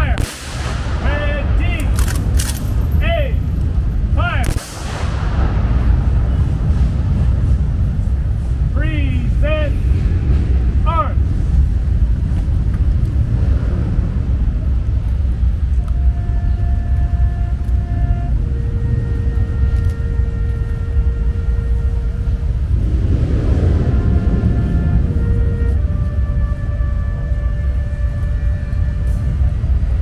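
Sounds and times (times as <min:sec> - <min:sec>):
rifle volley crack: 0:00.0 - 0:02.9, 0:04.2 - 0:05.6
low rumble of city traffic: 0:00.0 - 0:30.0.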